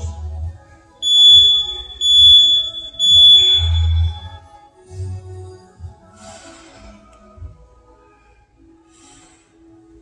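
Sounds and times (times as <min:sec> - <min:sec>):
background music: 0:00.0 - 0:10.0
interval timer beeping: 0:01.0 - 0:04.3.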